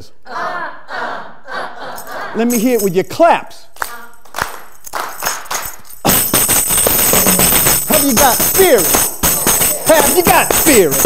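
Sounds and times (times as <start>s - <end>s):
tambourine hits and jingles: 4.6s - 11.0s.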